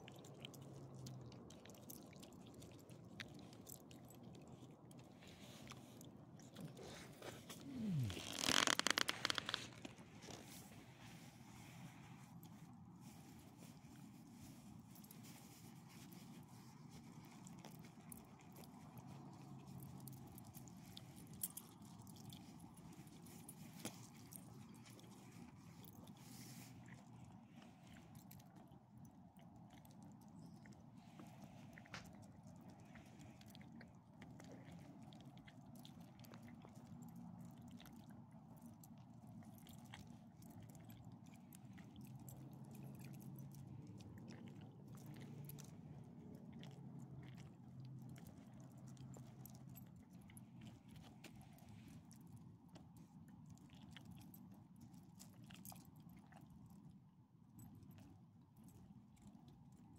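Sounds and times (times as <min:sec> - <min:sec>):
faint low hum: 0:00.0 - 0:59.9.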